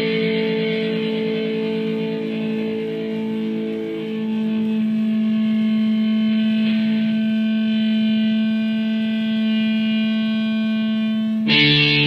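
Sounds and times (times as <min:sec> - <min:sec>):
sustained electric guitar note: 0:00.0 - 0:12.0.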